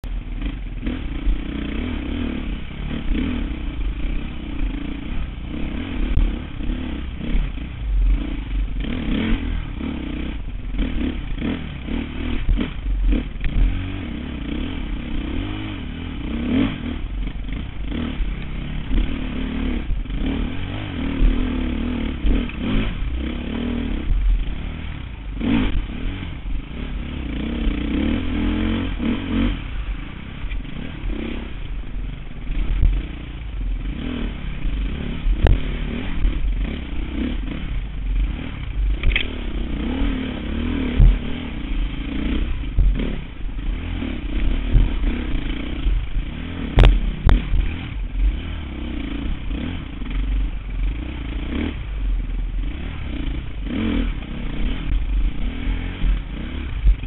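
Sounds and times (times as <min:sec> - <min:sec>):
dirt bike engine revving: 0:00.1 - 0:57.0.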